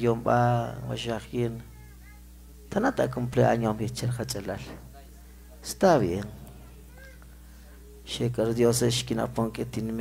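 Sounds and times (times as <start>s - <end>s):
man's voice through microphone: 0.0s - 1.7s, 2.7s - 6.9s, 7.8s - 10.0s
steady low hum: 0.0s - 10.0s.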